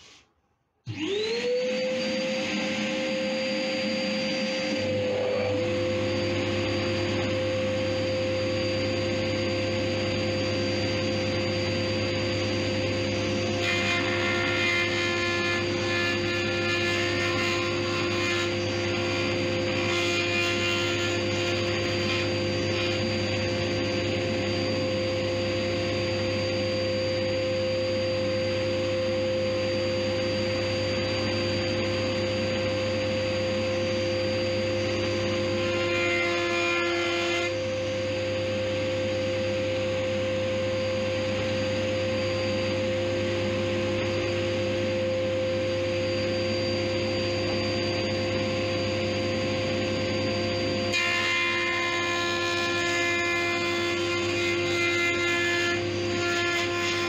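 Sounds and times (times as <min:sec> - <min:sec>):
dust extractor motor whine: 0:00.9 - 0:57.0.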